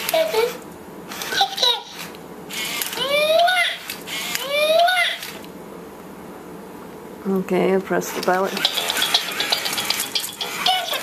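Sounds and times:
toy gear motors whirring: 0.0 - 5.5, 8.5 - 11.0
high toy voice call: 2.9 - 5.3, 10.4 - 11.0.

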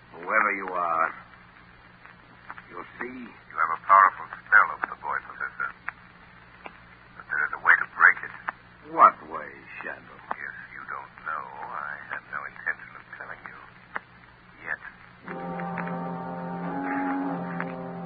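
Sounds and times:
man's voice on old recording: 0.0 - 1.4, 2.6 - 5.9, 7.2 - 13.8, 14.6 - 15.9
low steady hum: 0.0 - 18.0.

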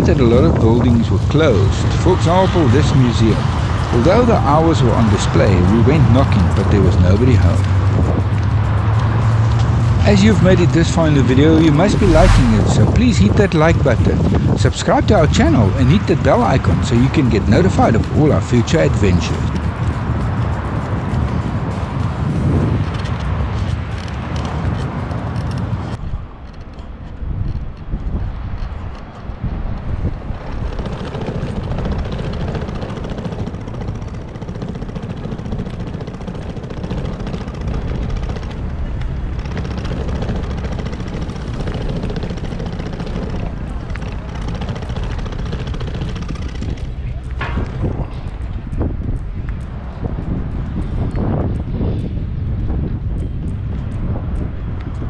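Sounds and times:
low outdoor rumble: 0.0 - 55.0.

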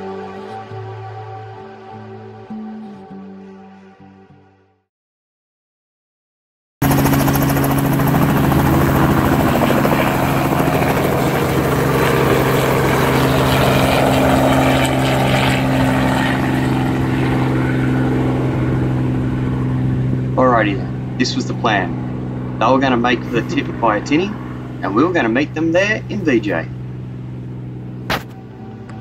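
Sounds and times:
helicopter engine and rotor hum: 6.8 - 29.0.

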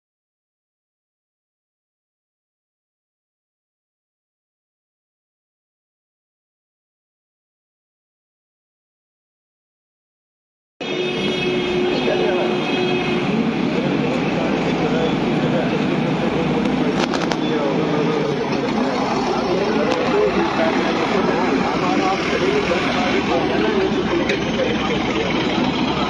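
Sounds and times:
many voices talking: 10.8 - 26.0
vehicle engine noise: 10.8 - 26.0.

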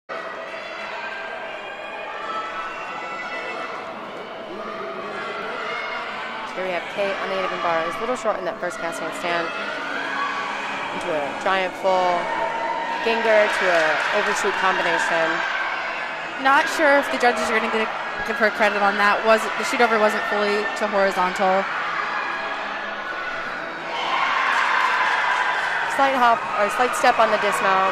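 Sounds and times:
crowd cheering and shouting: 0.1 - 27.9
indistinct chatter of voices: 0.1 - 27.9.

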